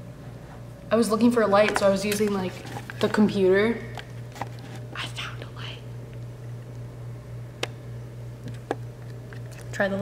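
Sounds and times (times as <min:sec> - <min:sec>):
steady low hum: 0:00.0 - 0:10.0
person whispering: 0:05.0 - 0:05.9.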